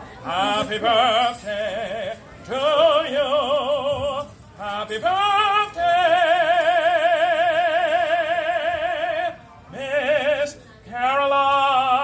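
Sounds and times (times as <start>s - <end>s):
man singing with vibrato: 0.0s - 12.0s.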